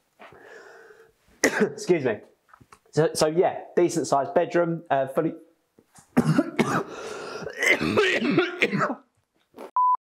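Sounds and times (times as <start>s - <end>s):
man clearing throat: 1.4s - 1.8s, 6.2s - 9.0s
man coughing: 1.4s - 1.9s, 6.2s - 9.0s.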